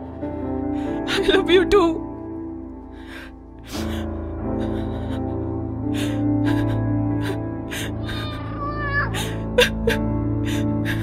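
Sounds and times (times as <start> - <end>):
low-pitched film score: 0.0 - 11.0
woman sobbing: 0.9 - 2.1, 3.6 - 11.0.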